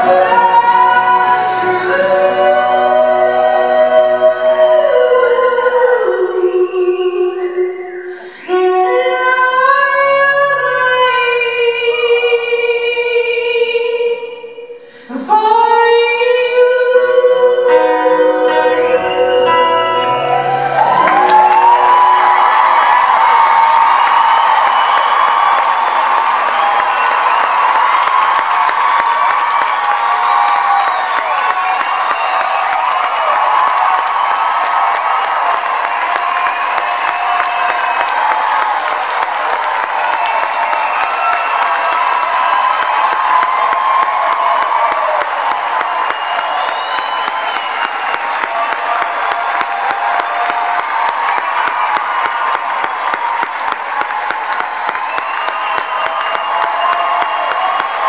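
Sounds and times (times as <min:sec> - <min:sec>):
audience applauding and cheering: 0:00.0 - 0:06.6, 0:18.5 - 0:58.0
whoops and shouts: 0:19.0 - 0:58.0.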